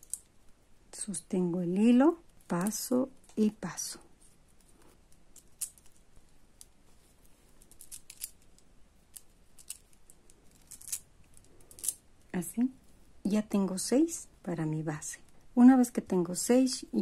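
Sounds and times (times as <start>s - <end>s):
beads clicking together: 0.0s - 0.4s, 5.0s - 6.8s, 7.6s - 12.3s.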